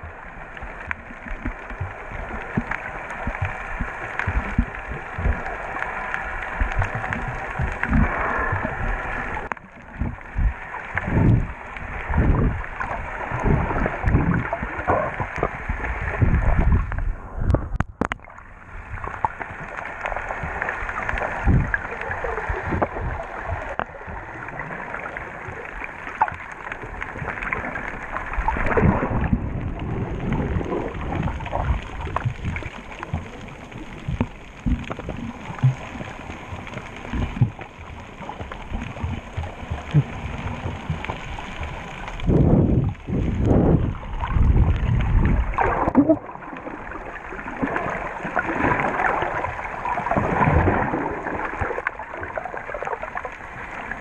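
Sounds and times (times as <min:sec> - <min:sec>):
muffled water sloshing and gurgling: 0:00.0 - 0:54.0.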